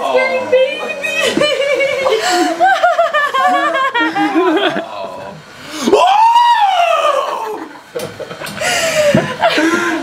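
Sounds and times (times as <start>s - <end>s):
person crying out in surprise: 5.8s - 7.7s.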